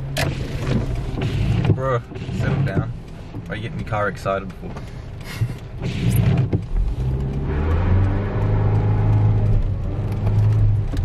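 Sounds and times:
tyres spinning on wet road: 0.0 - 11.0
car engine revving hard: 5.8 - 11.0.

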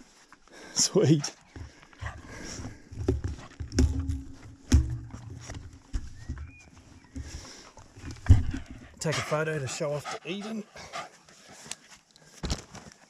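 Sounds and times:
heavy bumps: 2.0 - 6.5
camera handling knocks and rustles: 2.9 - 7.4, 12.4 - 13.0.

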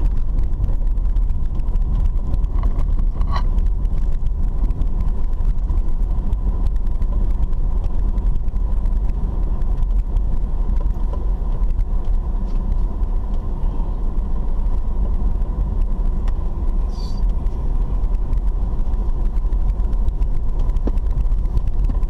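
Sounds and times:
engine and tyres rumbling: 0.0 - 22.0.

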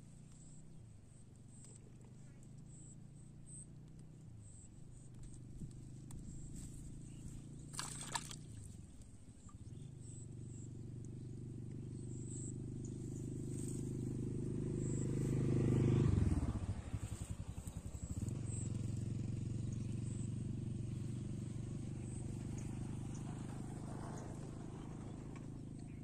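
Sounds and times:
vehicle engine passing: 11.4 - 26.0.

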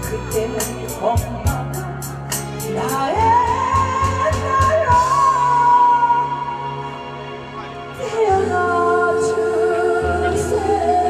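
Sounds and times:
backing music with drums: 0.0 - 5.9.

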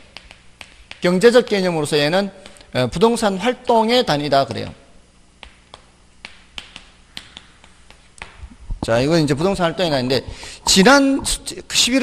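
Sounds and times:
chalk tapping on a chalkboard: 0.0 - 1.6, 5.4 - 8.4.

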